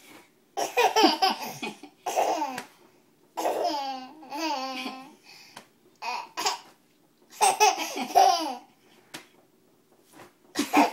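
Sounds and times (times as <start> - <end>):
baby laughing: 0.6 - 2.6, 3.4 - 5.2, 7.3 - 8.7, 10.6 - 10.9.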